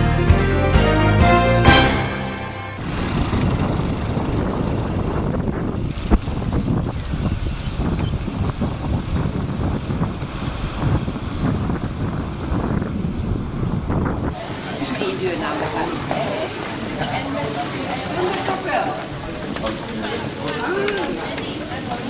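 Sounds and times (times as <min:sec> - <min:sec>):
wind buffeting microphone: 0:02.8 - 0:22.0.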